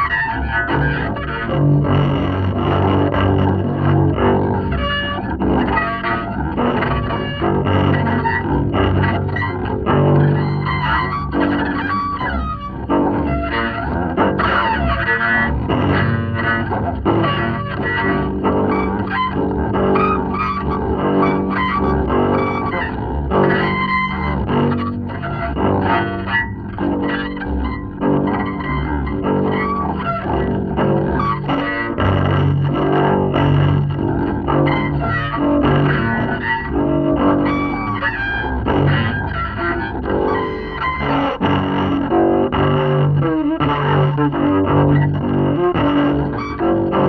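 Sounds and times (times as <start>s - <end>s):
solo double bass: 0.0s - 47.0s.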